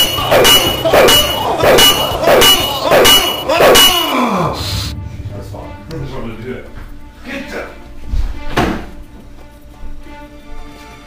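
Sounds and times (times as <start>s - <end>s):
shrill screeching stabs: 0.0s - 5.0s.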